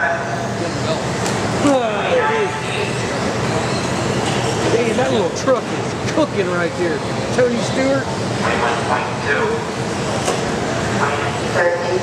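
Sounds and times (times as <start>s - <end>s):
voices in a hall: 0.0s - 12.0s
man talking: 4.6s - 9.7s.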